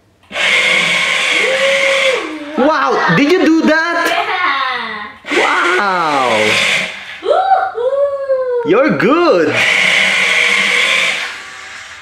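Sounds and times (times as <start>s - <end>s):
wheels hissing on wooden floor: 0.2s - 3.1s, 5.2s - 7.2s, 9.5s - 12.0s
toy car motor whirring: 0.2s - 3.3s, 5.2s - 7.3s, 9.5s - 12.0s.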